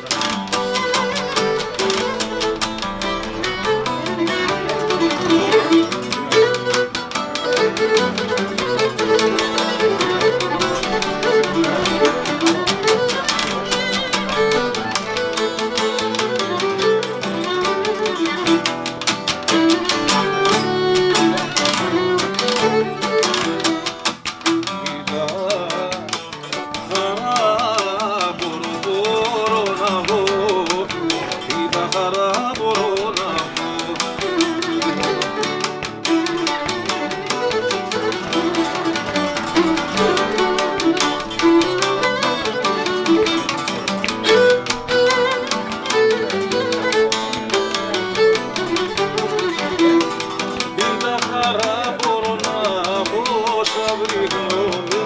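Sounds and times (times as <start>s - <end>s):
bowed lyra dance tune: 0.0s - 24.8s, 32.8s - 51.5s
acoustic guitar strumming: 0.0s - 55.0s
plucked lute rhythm: 0.0s - 55.0s.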